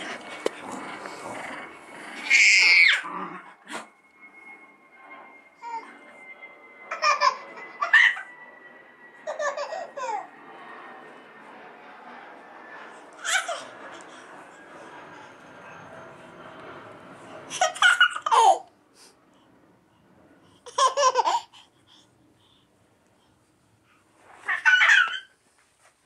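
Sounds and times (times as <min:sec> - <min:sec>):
toddler laughing and squealing: 0:02.2 - 0:03.1, 0:05.6 - 0:05.9, 0:06.9 - 0:08.3, 0:09.2 - 0:10.3, 0:13.2 - 0:13.8, 0:17.5 - 0:18.7, 0:20.7 - 0:21.6, 0:24.4 - 0:25.4.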